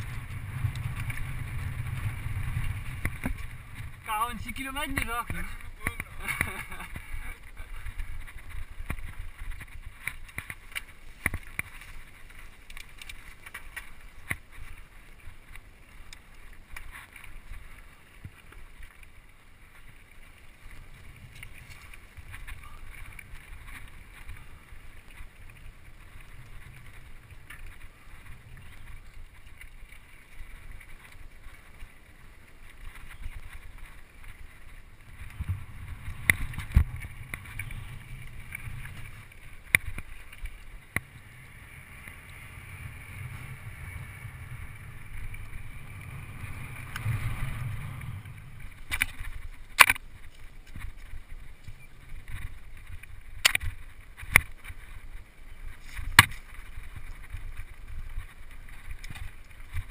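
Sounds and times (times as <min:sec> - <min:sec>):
wind on microphone: 0:00.0 - 0:12.5, 0:32.6 - 0:59.9
mountain bike rattling: 0:00.0 - 0:59.9.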